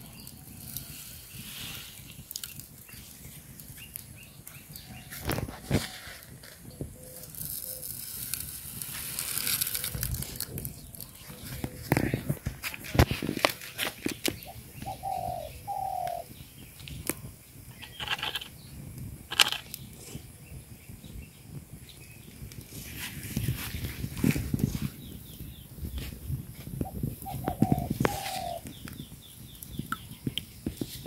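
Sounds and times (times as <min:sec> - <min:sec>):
bird hooting: 0:14.5 - 0:16.3, 0:27.2 - 0:28.7.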